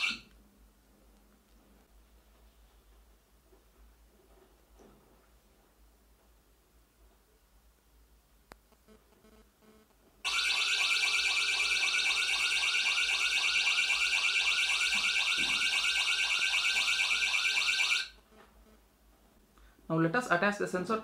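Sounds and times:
warbling electronic siren alarm: 0.0 - 0.2, 10.3 - 18.2.

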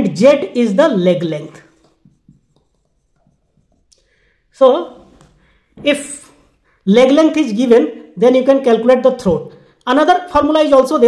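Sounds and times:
marker pen writing on whiteboard: 1.1 - 4.2.

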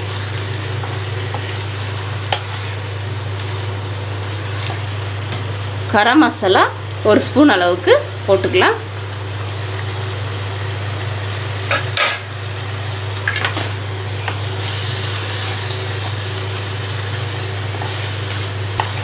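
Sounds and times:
food sizzling in a pan: 0.0 - 19.0
spatula stirring and scraping: 14.3 - 19.0.

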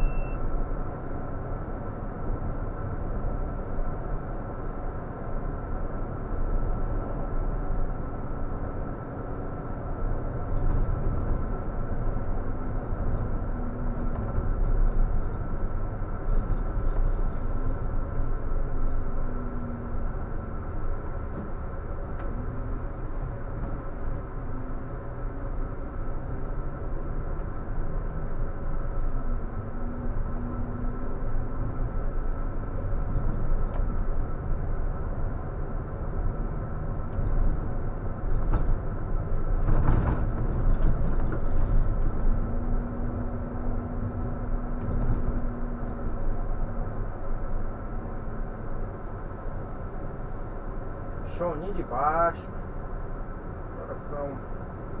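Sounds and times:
bus engine drone: 0.0 - 55.0
road rumble: 0.0 - 55.0.

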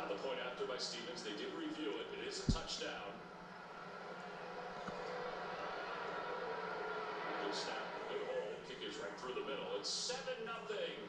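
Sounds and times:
stadium crowd noise on tv: 0.0 - 11.0.

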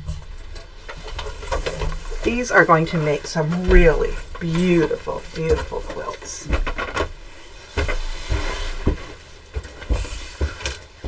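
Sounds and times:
low steady hum: 0.0 - 10.0
fabric rustling: 0.7 - 11.0.

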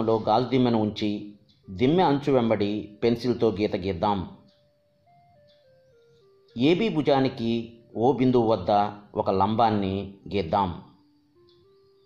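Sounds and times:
man narrating: 0.0 - 4.4, 6.6 - 10.9.

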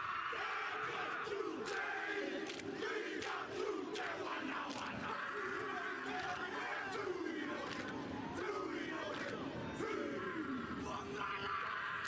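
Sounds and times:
men shouting chant in unison: 0.0 - 12.0
stadium crowd noise: 0.0 - 12.0.

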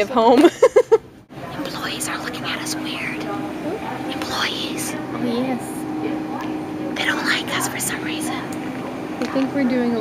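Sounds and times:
steady low hum: 0.9 - 10.0
woman whispering: 1.6 - 3.4, 4.1 - 5.0, 7.0 - 8.5.

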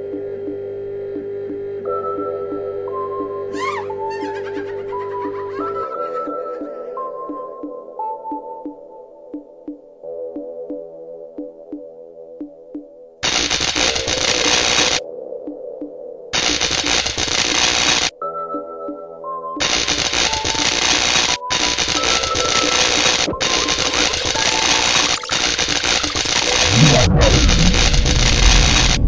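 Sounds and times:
electronic music with synth figure: 1.1 - 29.0
electric crackle: 13.2 - 15.0, 16.4 - 18.1, 19.6 - 29.0
low sweep: 25.4 - 29.0.

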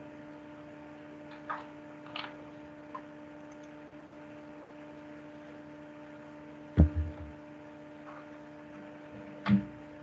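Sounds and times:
electrical hum with tones: 0.0 - 10.0
low thump: 6.8 - 7.3.

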